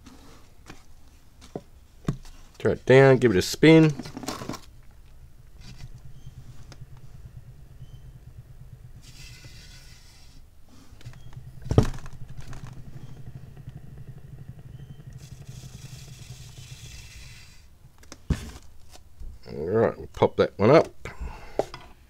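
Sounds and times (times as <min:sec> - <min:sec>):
motor humming: 0:02.1 - 0:18.8.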